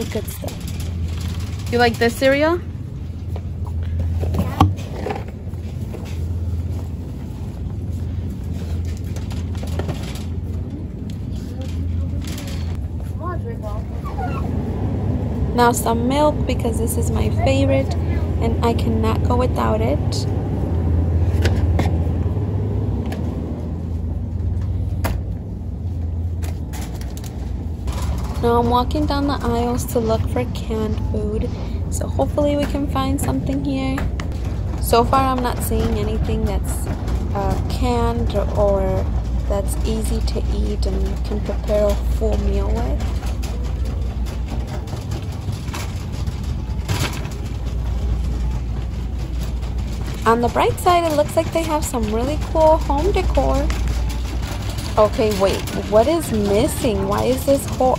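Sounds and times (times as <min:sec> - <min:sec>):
shopping cart rattling: 0:00.0 - 0:03.4, 0:04.0 - 0:57.9
steady low rumble: 0:00.0 - 0:57.9.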